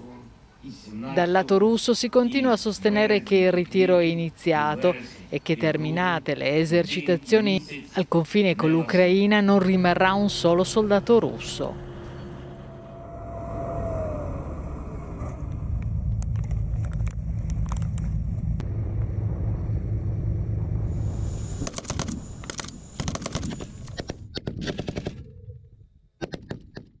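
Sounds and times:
vehicle engine low rumble: 0:09.3 - 0:24.3
machine gun bursts: 0:21.6 - 0:24.1.

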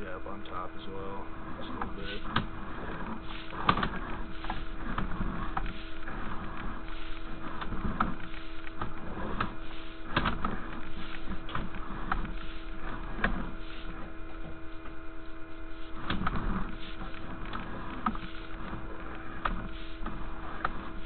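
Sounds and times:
electrical hum: 0:00.0 - 0:21.0
cable scraping and knocking: 0:01.4 - 0:15.0, 0:15.6 - 0:21.0.

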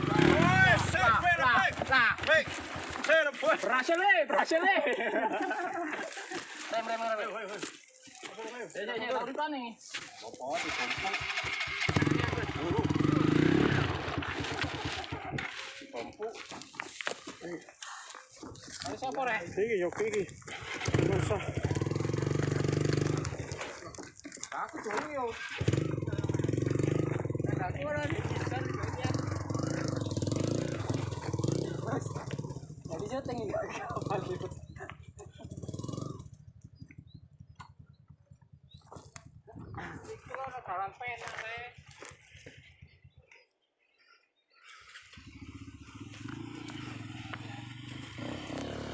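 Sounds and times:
dirt bike engine revving: 0:00.0 - 0:03.2, 0:10.4 - 0:15.7, 0:20.3 - 0:24.0, 0:24.8 - 0:38.5, 0:44.9 - 0:48.9
people talking: 0:00.0 - 0:11.3, 0:12.0 - 0:14.2, 0:15.7 - 0:16.6, 0:18.8 - 0:21.8, 0:23.2 - 0:26.5, 0:27.1 - 0:29.9, 0:30.6 - 0:32.3, 0:32.9 - 0:34.9, 0:39.5 - 0:41.8.

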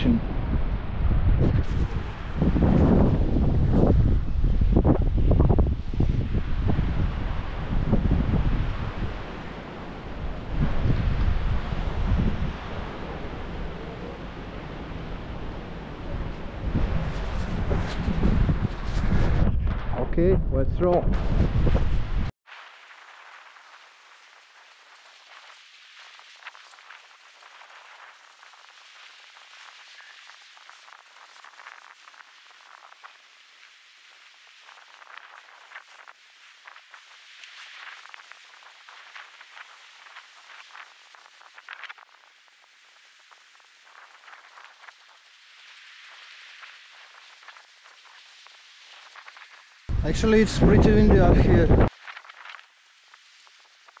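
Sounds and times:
wind rustling through pine trees: 0:00.0 - 0:19.5, 0:21.2 - 0:54.0
wind rumble on microphone: 0:00.0 - 0:22.4, 0:49.1 - 0:52.6.

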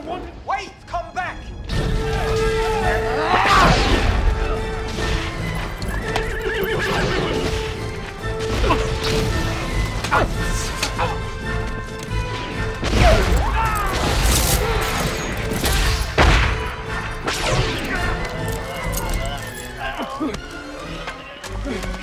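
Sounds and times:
film score music: 0:00.0 - 0:22.0
hooves clattering: 0:05.4 - 0:08.2
horses neighing: 0:05.6 - 0:07.8.

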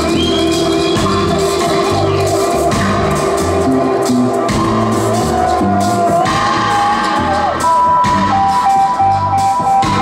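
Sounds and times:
lead instrument melody: 0:00.0 - 0:10.0
live reggae band playing: 0:00.0 - 0:10.0.

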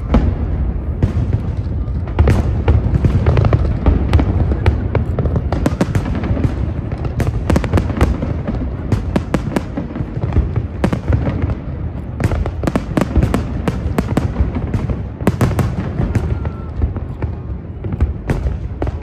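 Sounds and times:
fireworks bangs and crackles: 0:00.0 - 0:19.0.

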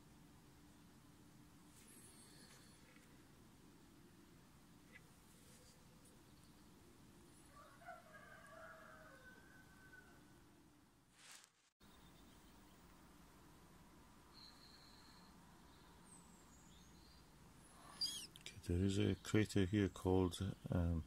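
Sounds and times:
faint high chirps: 0:14.2 - 0:19.4.

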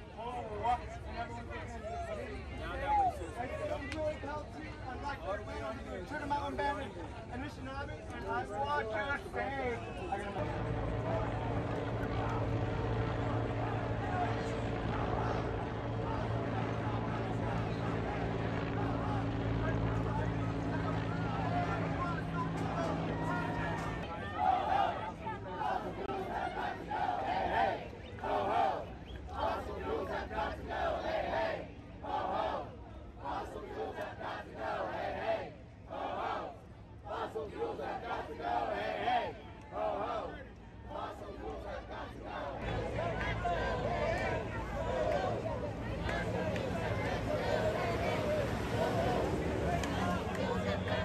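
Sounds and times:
faint voices: 0:00.0 - 0:51.0
helicopter rotor hum: 0:08.6 - 0:27.0, 0:42.6 - 0:51.0
crowd chanting: 0:11.1 - 0:20.3, 0:20.9 - 0:51.0.

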